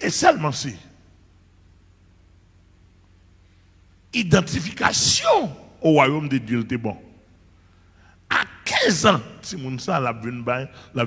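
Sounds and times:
man speaking: 0:00.0 - 0:00.9, 0:04.2 - 0:07.2, 0:08.3 - 0:11.0.

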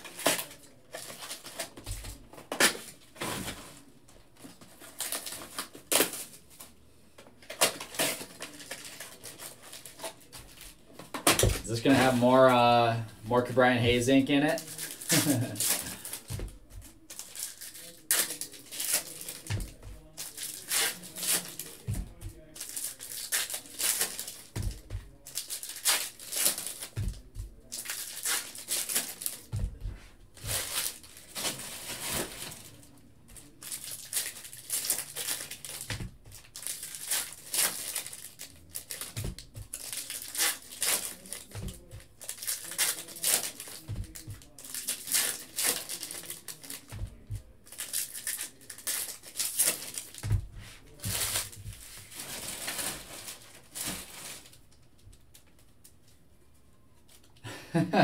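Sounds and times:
foil wrappers crinkling and tearing: 0:00.0 - 0:06.8, 0:07.4 - 0:29.8, 0:30.4 - 0:55.7
cards shuffling: 0:14.5 - 0:54.6.

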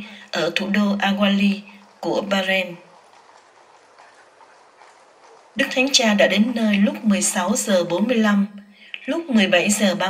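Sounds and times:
horse hooves on pavement: 0:00.0 - 0:08.4.

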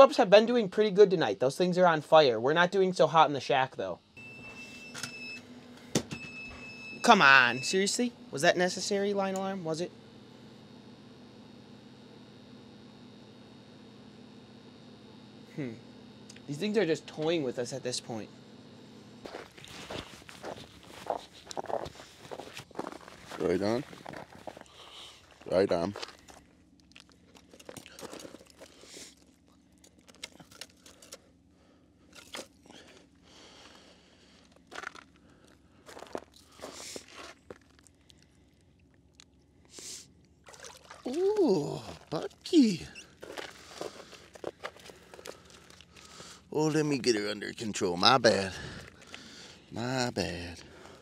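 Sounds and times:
faint steady hum and hiss: 0:00.0 - 0:51.0
boots crunching on crusted snow: 0:19.2 - 0:26.4, 0:35.8 - 0:37.8, 0:43.2 - 0:46.4.

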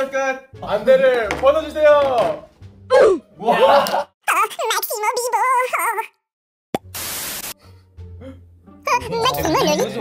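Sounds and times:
high voice calling out excitedly: 0:04.2 - 0:06.1
short burst of hiss: 0:06.9 - 0:07.6.

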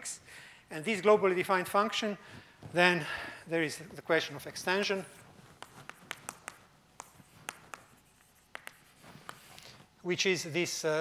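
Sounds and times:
chalk tapping on blackboard: 0:05.4 - 0:09.6
chalk scratching on blackboard: 0:05.5 - 0:09.6.

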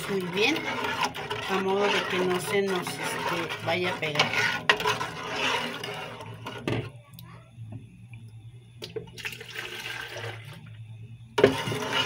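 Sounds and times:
liquid stirred in metal pot: 0:00.0 - 0:07.0, 0:08.9 - 0:12.0
low steady hum: 0:00.0 - 0:12.0.

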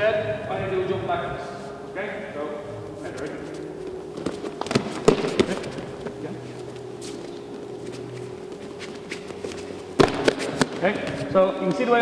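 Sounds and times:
quiet shuffling: 0:02.9 - 0:11.4
bare feet on mats: 0:03.0 - 0:11.4.

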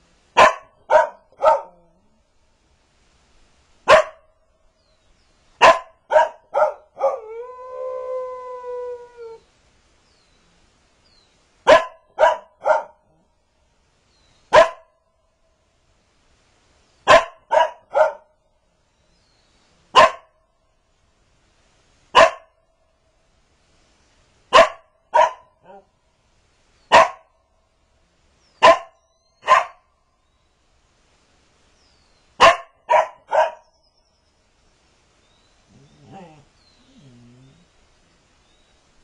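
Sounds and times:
dog barking: 0:00.4 - 0:01.9, 0:03.9 - 0:04.2, 0:05.6 - 0:07.2, 0:11.7 - 0:13.1, 0:14.5 - 0:14.9, 0:17.1 - 0:18.3, 0:20.0 - 0:20.3, 0:22.2 - 0:22.5, 0:24.5 - 0:25.9, 0:26.9 - 0:27.3, 0:28.6 - 0:29.9, 0:32.4 - 0:33.7.

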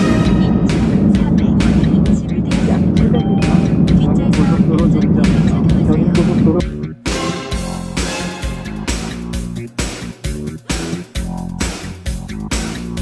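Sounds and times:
background music with steady beat: 0:00.0 - 0:13.0.

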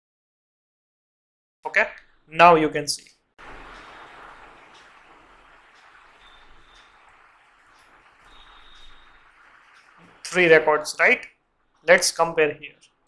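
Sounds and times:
microphone room hiss: 0:01.8 - 0:12.8.

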